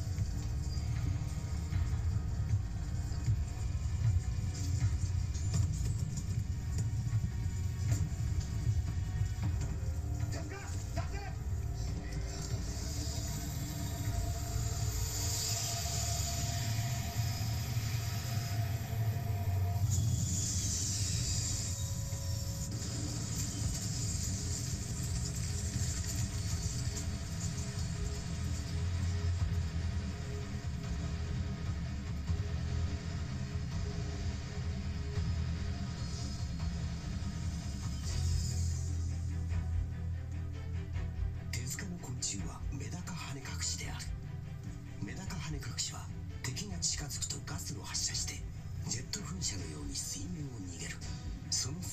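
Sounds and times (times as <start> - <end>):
film music from tv speaker: 0.0 - 51.9
hissing rushes of noise: 10.5 - 39.3.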